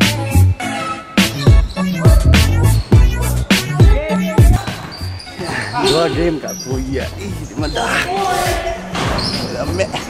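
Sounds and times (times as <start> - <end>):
background music: 0.0 - 10.0
man's voice: 3.7 - 4.7, 5.6 - 10.0.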